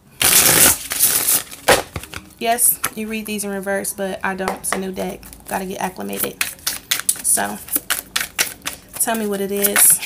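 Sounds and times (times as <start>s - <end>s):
cards shuffling: 5.2s - 10.0s.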